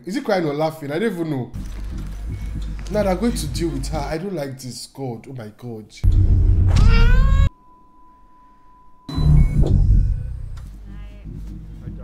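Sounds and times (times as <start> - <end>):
faint steady high tone: 7.5 - 9.3.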